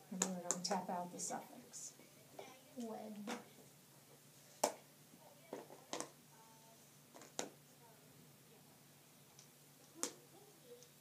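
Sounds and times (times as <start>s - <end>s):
faint low voice: 9.9s - 11.0s.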